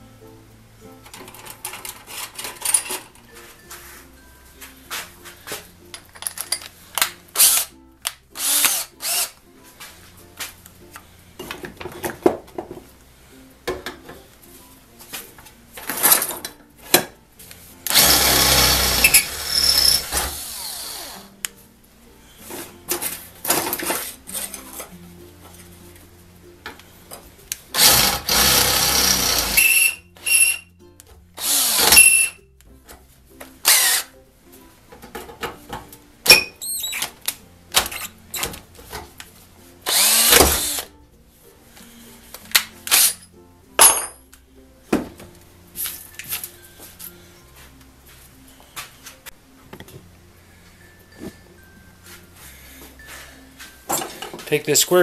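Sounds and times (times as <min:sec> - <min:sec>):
faint background music: 0:00.0 - 0:55.0
cordless drill boring through steel: 0:07.4 - 0:07.7, 0:08.4 - 0:09.4, 0:17.9 - 0:21.3, 0:27.7 - 0:30.6, 0:31.4 - 0:32.4, 0:33.6 - 0:34.1, 0:39.8 - 0:40.9, 0:42.9 - 0:43.2.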